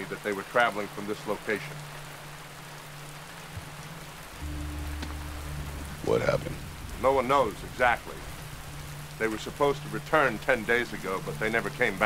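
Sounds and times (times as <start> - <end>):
steady rain hiss: 0.0 - 12.0
film score drone: 4.2 - 12.0.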